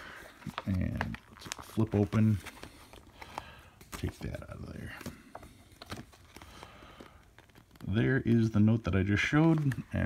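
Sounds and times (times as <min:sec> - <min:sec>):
paper pages rustling: 0:00.0 - 0:10.0.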